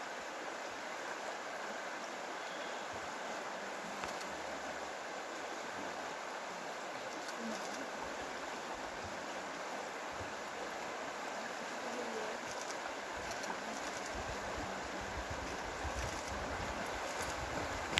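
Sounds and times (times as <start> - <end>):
shallow river running over rocks: 0.0 - 17.9
wind rumble on microphone: 14.1 - 17.9.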